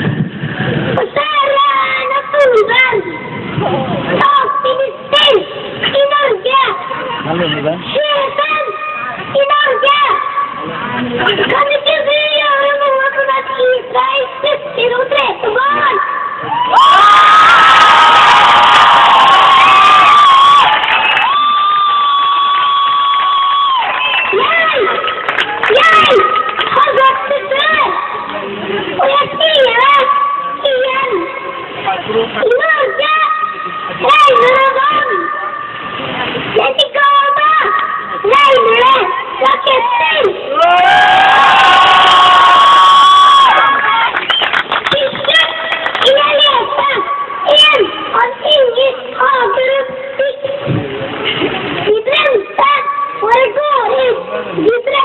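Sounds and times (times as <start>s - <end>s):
child shouting through loudspeaker: 1.0s - 3.4s, 4.2s - 10.6s, 11.5s - 17.0s, 24.3s - 25.0s, 25.6s - 28.3s, 29.0s - 31.6s, 32.4s - 35.7s, 36.6s - 40.8s, 44.9s - 50.7s, 51.9s - 55.0s
crowd cheering: 16.3s - 29.2s, 37.3s - 48.3s.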